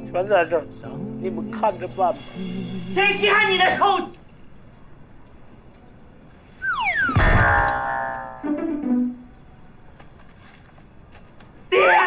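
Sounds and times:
falling swoops: 0:06.6 - 0:09.1.

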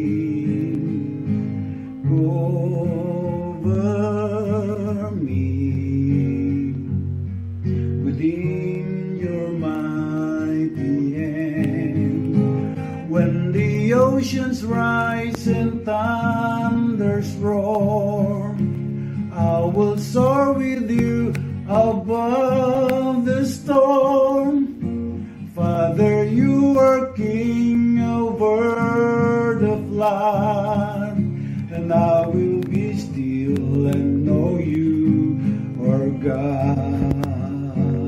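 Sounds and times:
man singing a worship song: 0:00.0 - 0:06.9, 0:07.8 - 0:38.0
acoustic guitar strumming: 0:00.0 - 0:38.0.

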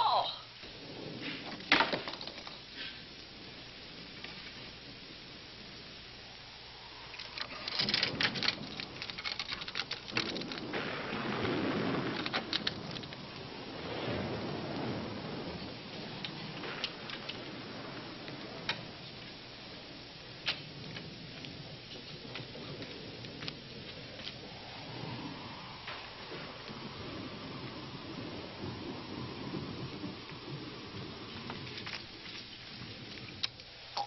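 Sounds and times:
rain-like rumble: 0:00.0 - 0:34.0
scattered ticks: 0:07.1 - 0:13.5, 0:29.6 - 0:34.0
rattling clicks: 0:07.2 - 0:10.7.

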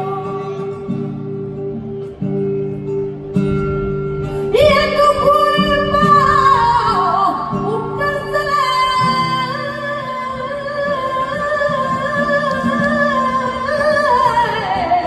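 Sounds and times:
woman singing flamenco: 0:00.0 - 0:01.4, 0:04.0 - 0:15.0
nylon-string guitar: 0:00.0 - 0:15.0.

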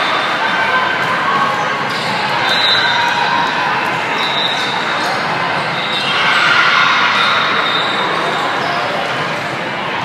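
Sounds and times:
many voices in gym: 0:00.0 - 0:10.0
volleyball play on court: 0:00.0 - 0:10.0.

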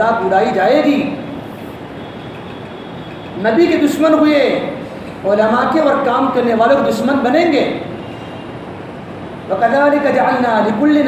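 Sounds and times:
steady background noise: 0:00.0 - 0:11.0
man speaking: 0:03.4 - 0:07.8.

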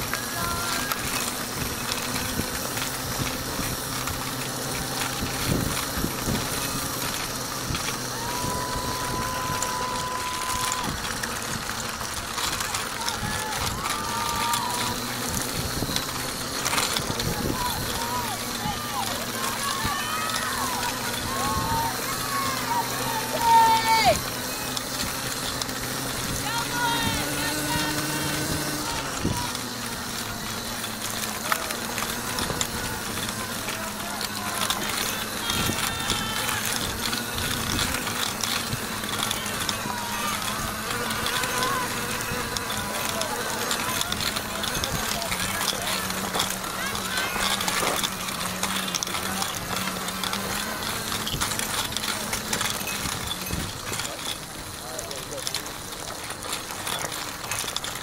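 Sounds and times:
distant spectator voices: 0:00.0 - 0:57.8.

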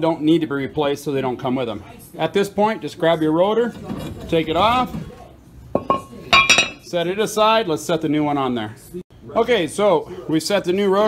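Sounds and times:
metal clank on concrete floor: 0:05.8 - 0:06.8.

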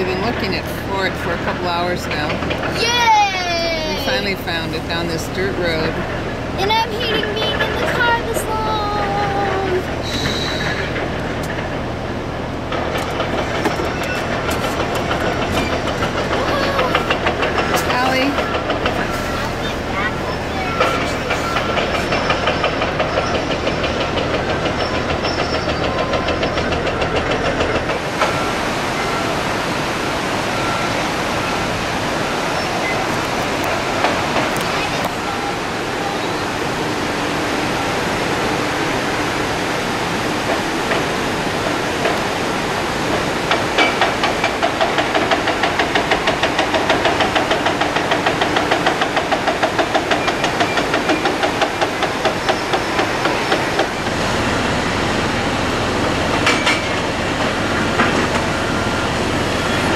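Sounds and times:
excavator mechanical knocking: 0:00.0 - 0:03.3, 0:04.0 - 0:28.5, 0:43.0 - 0:59.9.

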